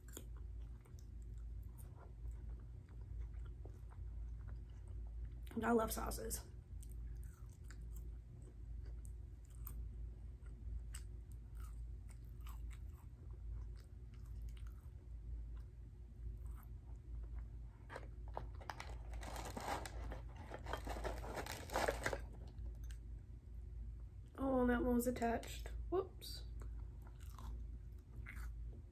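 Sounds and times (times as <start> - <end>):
soft chewing: 0.0 - 5.6, 6.4 - 23.2, 26.5 - 28.9
dense crunching: 17.9 - 22.4.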